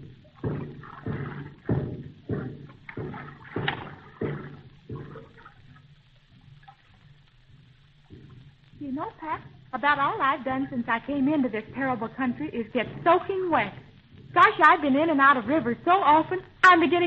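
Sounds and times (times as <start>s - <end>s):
water splashing: 0.0s - 17.0s.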